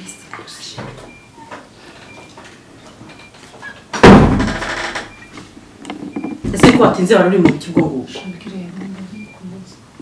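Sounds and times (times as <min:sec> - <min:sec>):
door slamming shut: 0:04.0 - 0:05.1.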